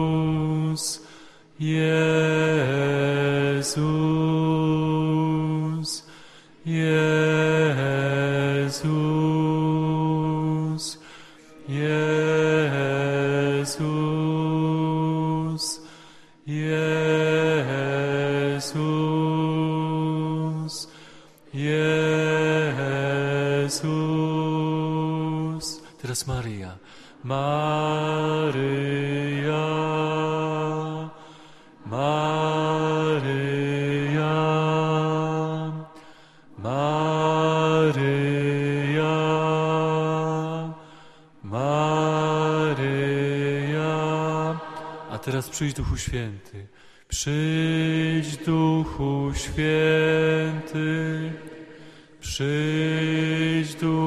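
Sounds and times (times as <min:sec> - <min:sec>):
slow sung chant: 0:00.0 - 0:54.0.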